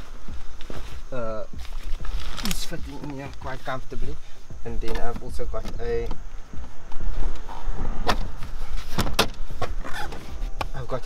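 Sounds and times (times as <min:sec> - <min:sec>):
suitcases shifted in car boot: 0:00.0 - 0:06.1.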